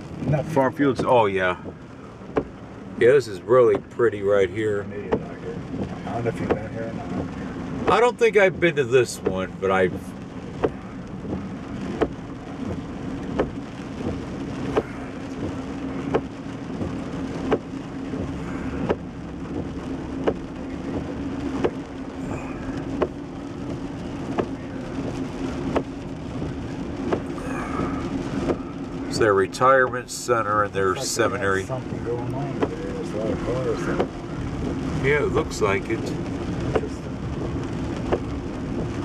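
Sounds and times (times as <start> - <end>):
car engine and road hum: 0.0 - 39.0.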